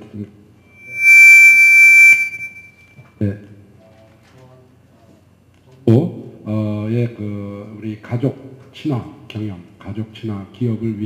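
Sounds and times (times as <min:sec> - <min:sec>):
microphone feedback squeal: 0:00.7 - 0:02.9.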